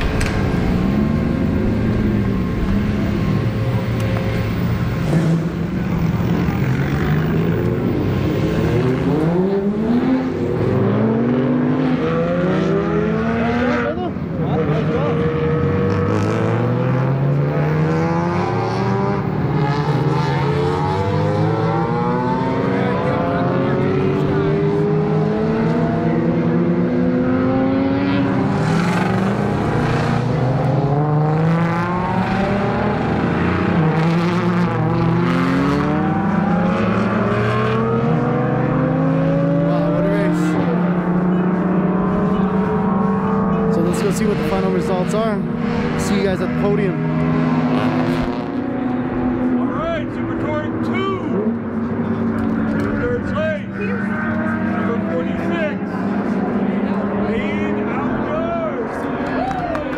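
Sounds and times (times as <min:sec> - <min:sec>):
race car engines accelerating: 0:00.0 - 0:59.9.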